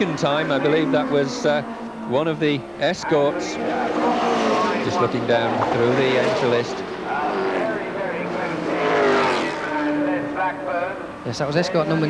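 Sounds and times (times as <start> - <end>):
racing car engines passing: 0.0 - 12.0.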